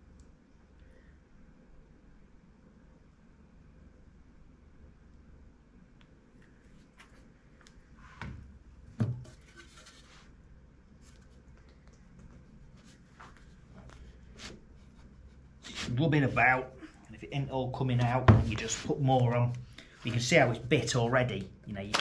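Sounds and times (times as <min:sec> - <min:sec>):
boards rubbing on glue: 0:14.2 - 0:16.9.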